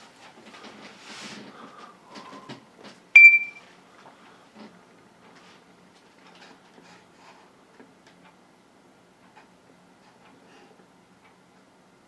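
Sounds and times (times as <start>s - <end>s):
smartphone beep: 3.2s - 3.6s.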